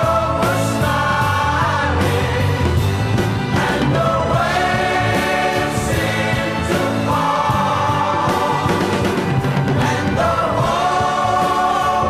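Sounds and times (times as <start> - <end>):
pop song with voices singing: 0.0 - 12.0.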